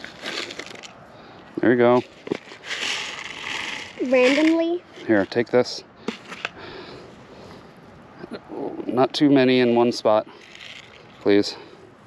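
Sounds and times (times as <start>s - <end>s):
faint outdoor background hiss: 0.0s - 12.0s.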